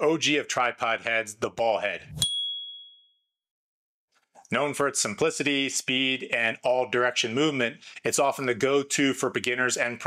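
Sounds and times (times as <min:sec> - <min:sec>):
bright ding chime: 0:02.2 - 0:03.2.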